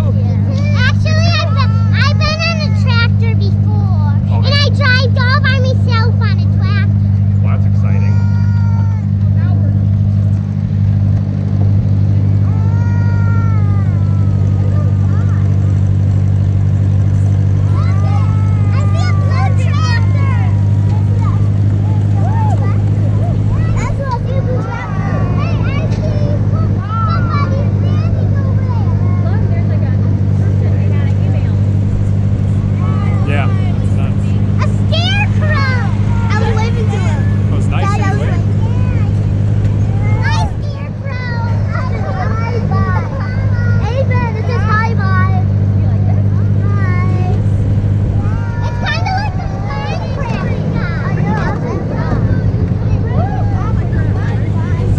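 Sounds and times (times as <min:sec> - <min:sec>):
children's voices: 0:00.0 - 0:54.9
tractor engine droning: 0:00.0 - 0:54.9.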